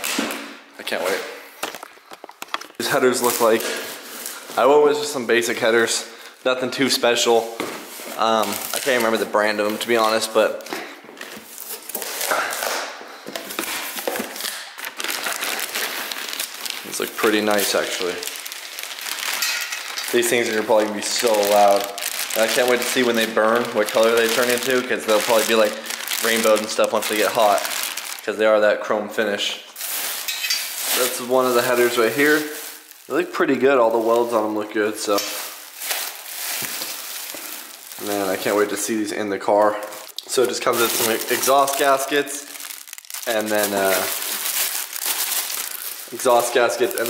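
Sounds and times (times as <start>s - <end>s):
plastic bag crinkling: 0.9s - 6.0s, 6.7s - 28.8s, 29.7s - 47.0s.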